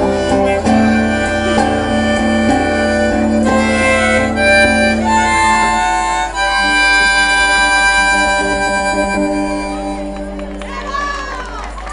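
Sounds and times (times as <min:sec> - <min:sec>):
harmonica: 0:00.0 - 0:10.7
acoustic and electric guitars: 0:00.0 - 0:11.8.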